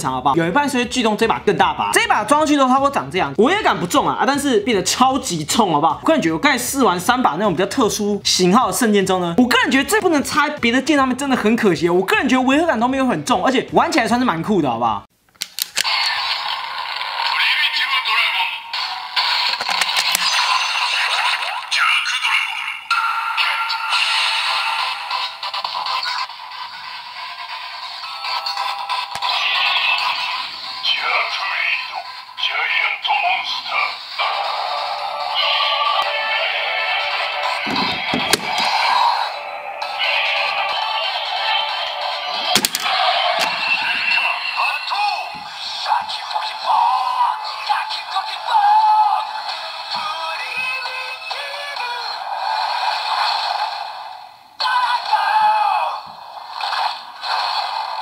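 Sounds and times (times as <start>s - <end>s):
sharp plastic clicks: 15.3s - 15.9s, 38.2s - 38.7s, 42.5s - 43.6s
electronic toy sound effects: 15.8s - 52.1s
plastic clicks: 19.6s - 20.2s, 42.6s - 43.6s
synthesized announcer voice: 30.8s - 34.4s, 43.4s - 49.3s.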